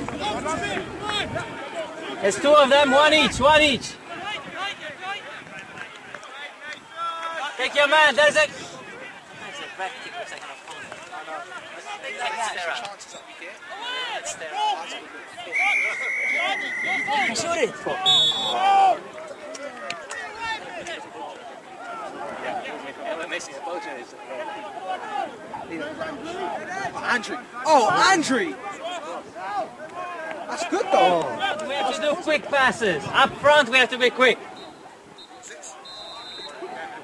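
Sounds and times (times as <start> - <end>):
men shouting and calling: 0.0 - 37.0
distant shouts: 13.1 - 22.6, 34.0 - 37.0
high-pitched whistle: 15.5 - 17.3, 18.0 - 18.6, 34.6 - 36.6.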